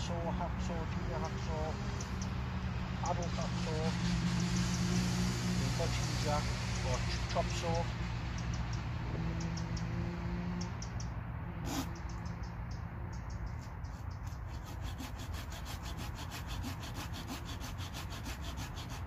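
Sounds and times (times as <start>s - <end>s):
hand saw cutting wood: 11.6s - 12.0s, 13.9s - 19.0s.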